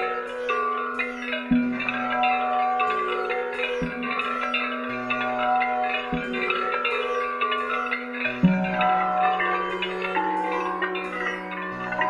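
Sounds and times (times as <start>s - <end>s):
steady held drone: 0.0s - 12.0s.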